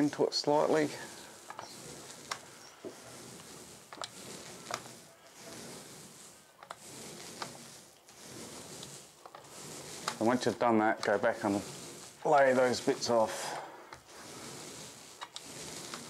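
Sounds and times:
paint roller hissing: 0:00.0 - 0:16.0.

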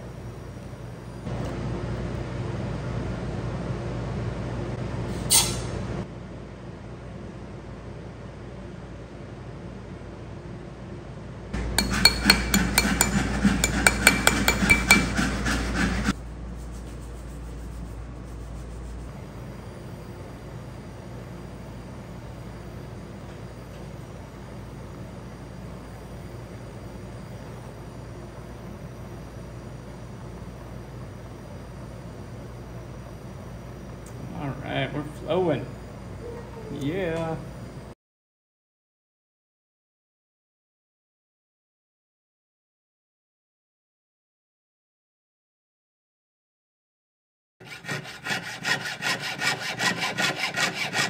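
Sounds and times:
metal scraping and clinking: 0:11.8 - 0:16.1.

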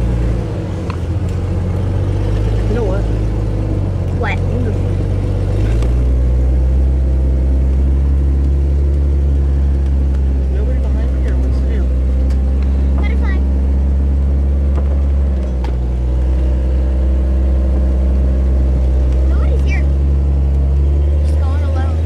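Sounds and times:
vehicle engine driving: 0:00.0 - 0:22.0.

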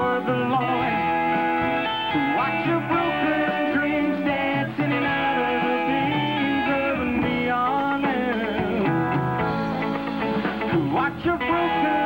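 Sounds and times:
country band playing: 0:00.0 - 0:12.0
electric guitars: 0:00.0 - 0:12.0.

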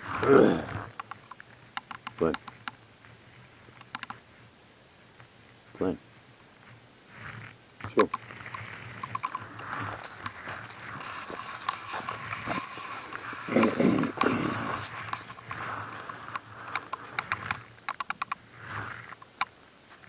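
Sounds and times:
small clicks: 0:00.9 - 0:02.8, 0:03.7 - 0:04.2, 0:07.9 - 0:19.6
scuffing: 0:09.2 - 0:17.2
footsteps on frozen leaves and snow: 0:09.3 - 0:17.2.

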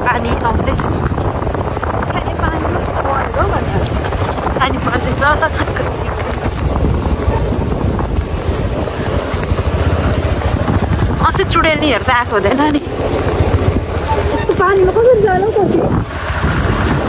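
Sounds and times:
motorbike running: 0:00.0 - 0:17.0
wind rush on microphone: 0:00.0 - 0:17.0.

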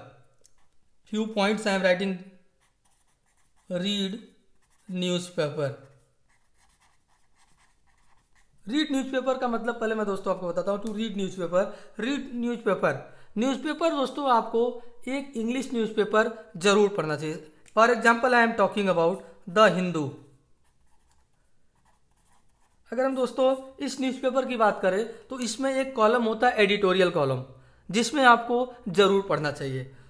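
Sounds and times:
marker scratching on paper: 0:02.5 - 0:09.0, 0:20.6 - 0:22.9.

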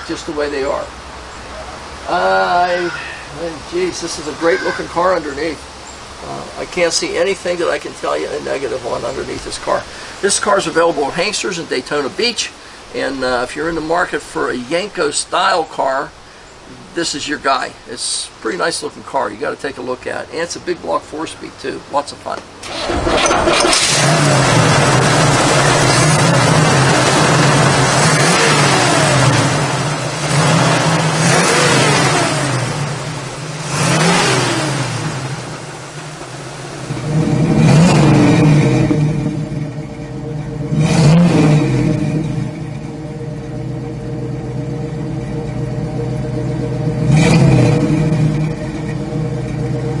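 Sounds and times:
car engine revving and idling: 0:03.3 - 0:12.2, 0:22.6 - 0:50.0.

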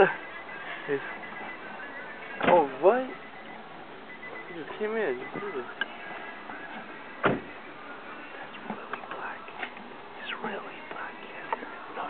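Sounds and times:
car door shutting: 0:02.3 - 0:02.7, 0:06.7 - 0:07.6.

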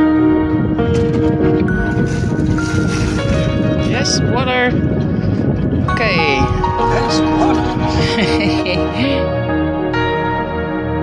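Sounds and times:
background music with held notes: 0:00.0 - 0:11.0
low rumble: 0:00.4 - 0:09.8
person laughing: 0:06.8 - 0:09.3.

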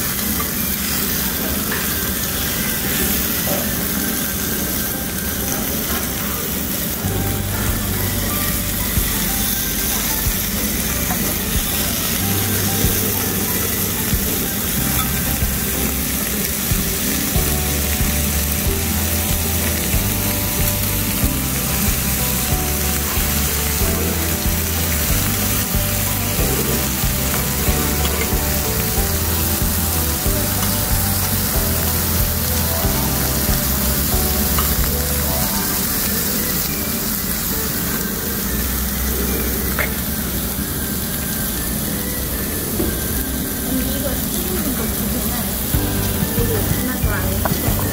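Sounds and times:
background music: 0:00.0 - 0:47.9
meat and vegetables sizzling: 0:00.0 - 0:47.9.

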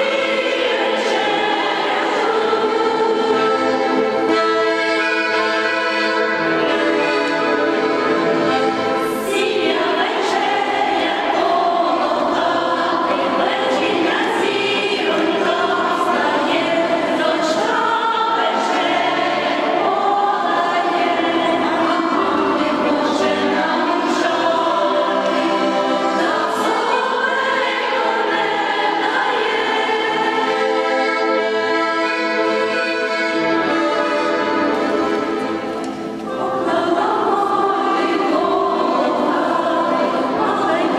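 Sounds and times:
accordion chord: 0:00.0 - 0:40.9
women's choir singing: 0:00.0 - 0:40.9.

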